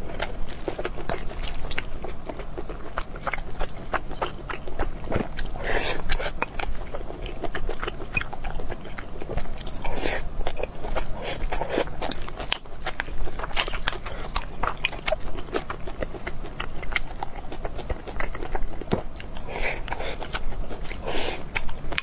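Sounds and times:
chewing with wet mouth clicks: 0.2s - 22.0s.

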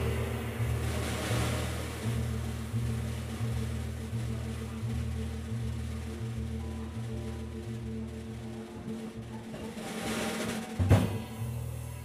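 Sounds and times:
cymbal crash and wash: 0.0s - 4.2s
double bass notes: 0.0s - 9.8s
piano chords: 0.0s - 12.0s.

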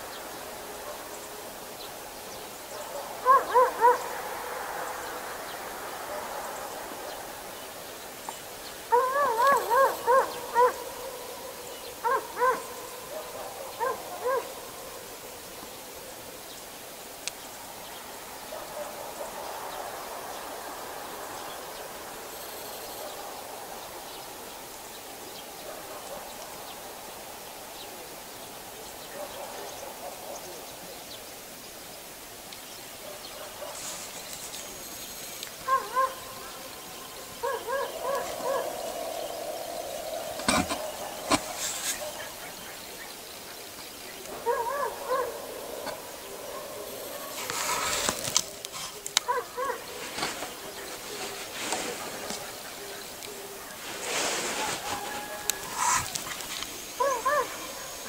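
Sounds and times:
animal calling: 3.0s - 4.2s, 37.3s - 43.0s.

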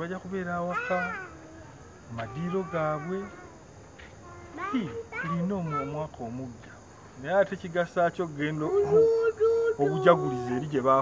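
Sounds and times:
man talking: 2.1s - 3.4s, 4.8s - 11.0s.

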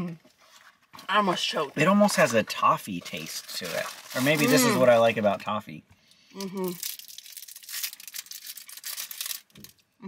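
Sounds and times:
plastic wrapper crinkling: 3.0s - 5.0s, 6.7s - 9.9s.

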